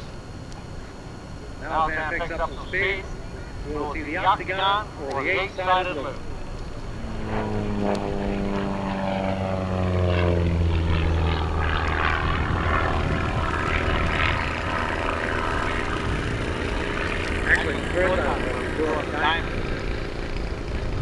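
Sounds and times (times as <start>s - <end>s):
propeller plane engine drone: 0.0s - 21.0s.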